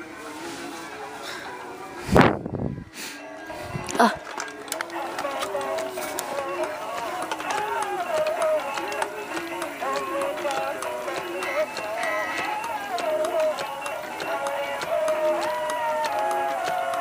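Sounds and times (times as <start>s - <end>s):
toy figurines playing melodies: 3.0s - 17.0s.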